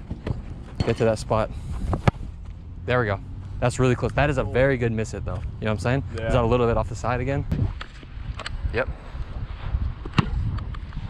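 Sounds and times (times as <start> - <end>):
wind on microphone: 1.4 - 2.4, 6.2 - 11.0.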